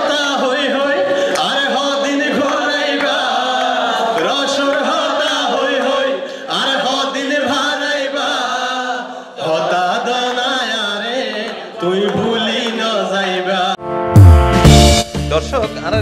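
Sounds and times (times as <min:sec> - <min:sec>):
men singing through a microphone: 0:00.0 - 0:13.8.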